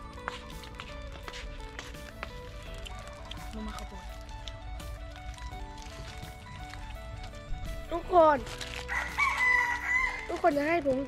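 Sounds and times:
rooster crowing: 0:08.9 - 0:10.3.

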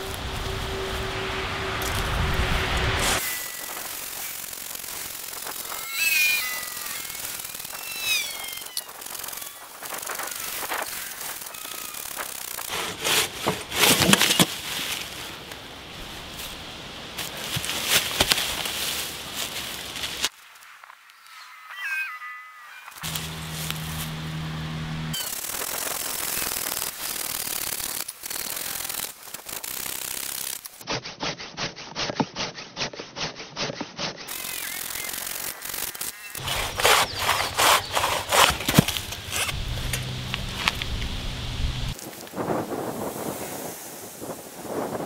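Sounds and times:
gliding saw squeals: 0:00.0 - 0:12.7, 0:21.2 - 0:24.2, 0:34.3 - 0:39.6
saw cutting through log: 0:01.7 - 0:14.4, 0:23.0 - 0:40.7
hand saw rasping through log: 0:12.6 - 0:14.2, 0:30.8 - 0:34.6, 0:36.4 - 0:39.6.

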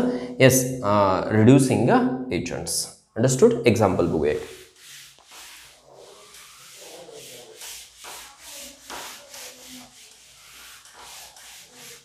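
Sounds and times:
duster rubbing chalkboard: 0:04.2 - 0:12.0.

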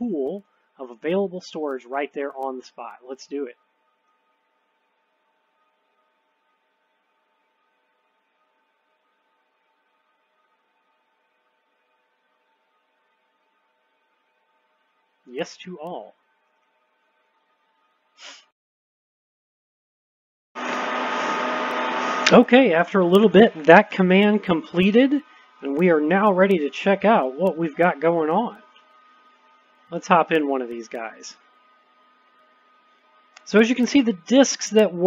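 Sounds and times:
steady hiss with faint hum: 0:00.0 - 0:17.9, 0:22.2 - 0:35.0
faint steady hiss: 0:22.2 - 0:31.5.

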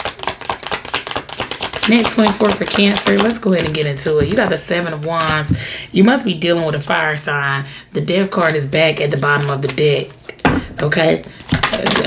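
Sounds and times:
cards being shuffled: 0:00.0 - 0:05.6, 0:08.5 - 0:12.0.

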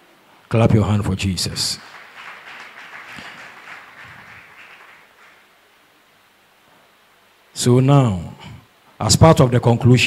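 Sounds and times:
congregation clapping: 0:01.2 - 0:05.6.

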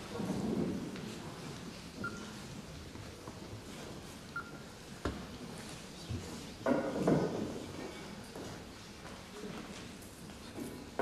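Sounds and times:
audience rustling and shuffling: 0:00.0 - 0:11.0.

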